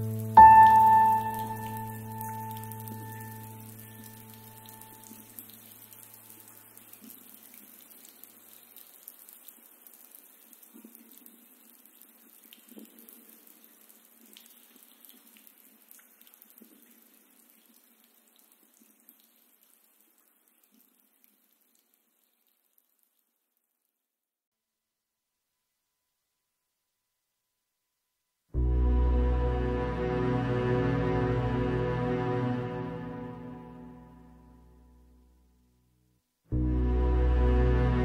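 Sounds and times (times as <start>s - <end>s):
soft instrumental music: 0.0s - 5.2s, 28.6s - 34.8s, 36.5s - 38.0s
faint running water: 0.0s - 24.0s
water dripping: 0.0s - 24.0s.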